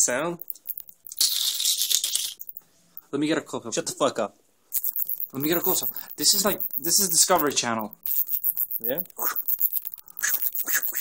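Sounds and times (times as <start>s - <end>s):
bat chittering: 0.3s - 2.6s, 4.7s - 11.0s.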